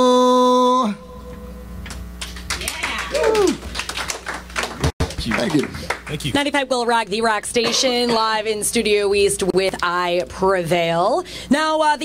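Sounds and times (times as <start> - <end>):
audience clapping: 1.9 - 6.4.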